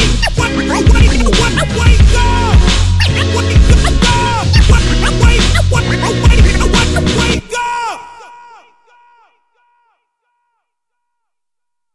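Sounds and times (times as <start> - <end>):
turntable scratching: 0.0 - 7.4
hip hop beat with kick drums: 0.0 - 7.7.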